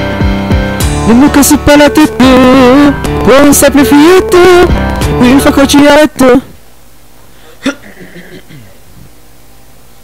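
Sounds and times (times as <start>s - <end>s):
music: 0.0s - 6.5s.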